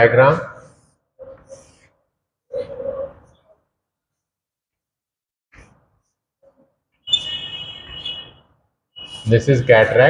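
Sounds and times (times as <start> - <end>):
chalk scratching on blackboard: 1.3 - 1.9.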